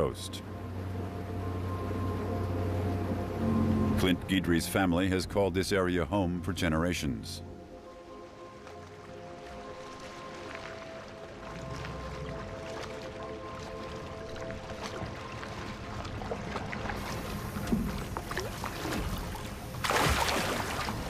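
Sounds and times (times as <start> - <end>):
boat motor rumbling: 0.0 - 21.0
music of long held notes: 0.0 - 21.0
water noise: 0.0 - 21.0.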